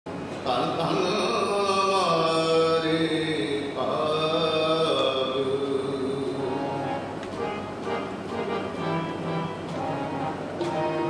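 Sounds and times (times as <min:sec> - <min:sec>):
man singing long held notes: 0:00.4 - 0:07.1
harmonium: 0:05.8 - 0:11.0.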